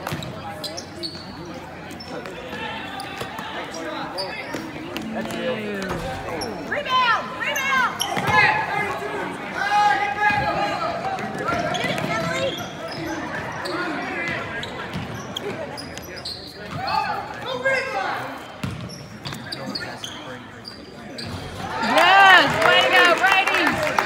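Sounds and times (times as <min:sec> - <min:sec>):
spectators' voices in echoing gym: 0:00.0 - 0:24.0
loud shout: 0:21.7 - 0:24.0.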